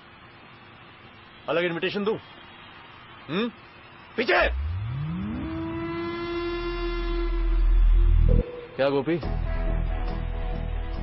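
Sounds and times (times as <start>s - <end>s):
deep rumble: 4.5s - 8.6s
held tone: 4.5s - 9.2s.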